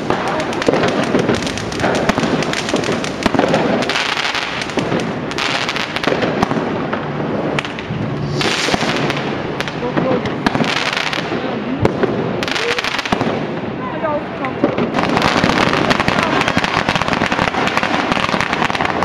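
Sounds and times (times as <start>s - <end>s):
fireworks bangs and pops: 0.0s - 19.0s
fireworks hissing: 0.0s - 19.0s.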